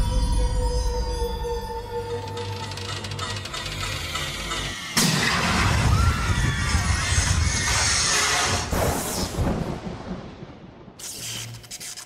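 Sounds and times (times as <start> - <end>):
eerie music with held tones: 0.0 - 5.2.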